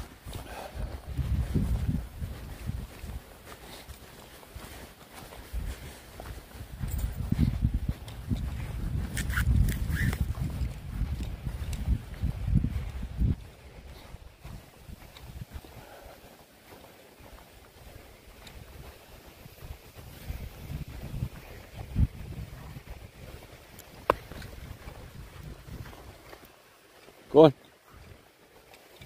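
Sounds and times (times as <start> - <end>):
wind buffeting microphone: 0.0 - 3.5, 5.4 - 16.3, 17.3 - 26.5.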